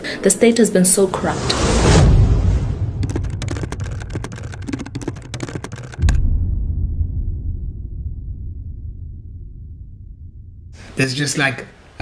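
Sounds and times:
typewriter keyboard clicks: 0:03.0 - 0:06.2
low rumbling drone: 0:06.0 - 0:11.0.

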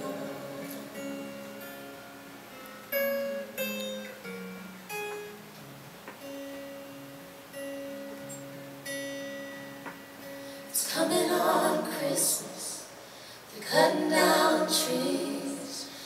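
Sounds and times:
acoustic guitar playing: 0:00.0 - 0:16.0.

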